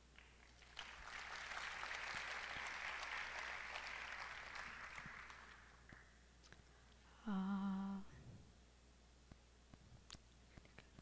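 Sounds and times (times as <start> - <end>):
person humming a note: 7.2 - 8.1.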